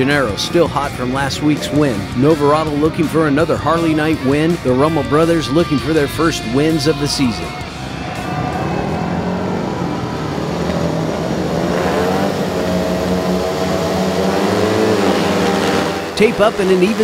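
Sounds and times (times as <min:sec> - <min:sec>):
motorcycle engines revving: 0:00.0 - 0:17.0.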